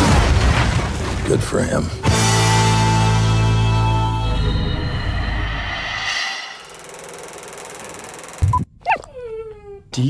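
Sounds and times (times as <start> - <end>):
puppy whining: 8.8 - 9.9.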